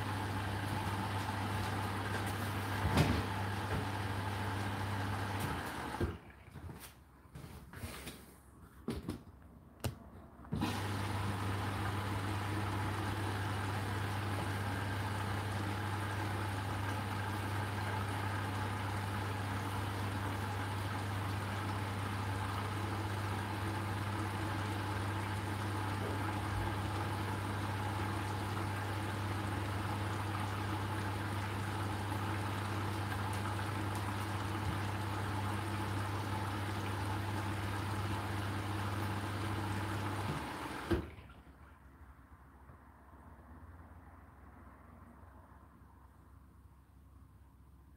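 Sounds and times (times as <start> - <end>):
inlet valve electrical hum: 0.0 - 47.9.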